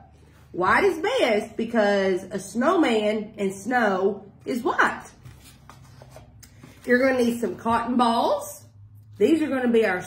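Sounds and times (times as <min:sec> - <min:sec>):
woman speaking: 0:00.0 - 0:05.3, 0:06.8 - 0:10.0.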